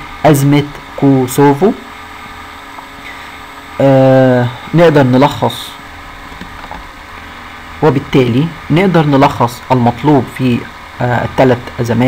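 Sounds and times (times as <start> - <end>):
faint background hum and hiss: 0.0 - 12.0
person speaking: 0.2 - 1.9, 3.8 - 5.8, 7.8 - 12.0.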